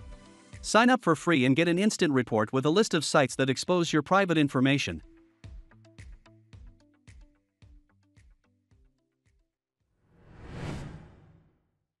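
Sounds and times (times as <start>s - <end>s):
deep whoosh: 10.1s - 11.6s.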